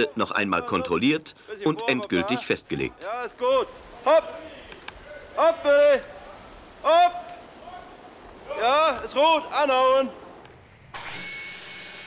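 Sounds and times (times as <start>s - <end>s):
woodworking machine motor whining: 10.3s - 12.0s.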